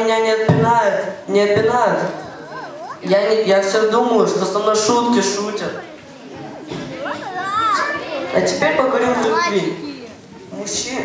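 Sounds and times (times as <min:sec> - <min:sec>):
children calling out: 0:02.0 - 0:03.1, 0:05.6 - 0:10.5.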